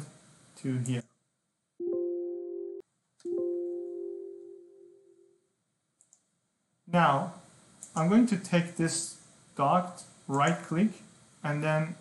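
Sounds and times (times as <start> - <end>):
electronic chime note: 1.8 - 5.0
mouse clicks: 6.0 - 6.2.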